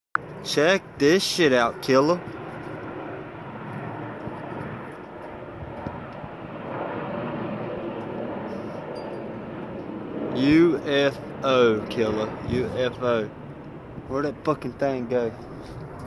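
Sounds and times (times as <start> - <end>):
distant airplane engine drone: 0.2 - 16.0.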